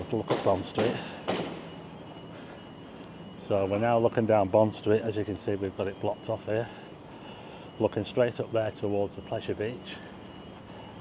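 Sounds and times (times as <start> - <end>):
low street background noise: 0.0 - 11.0.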